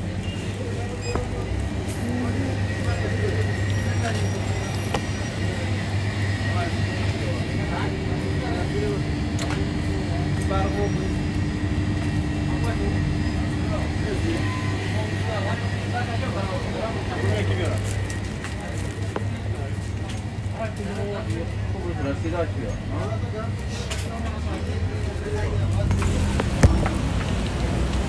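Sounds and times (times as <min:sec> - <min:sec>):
faint voices talking: 0:00.0 - 0:28.0
low mechanical rumble: 0:00.0 - 0:28.0.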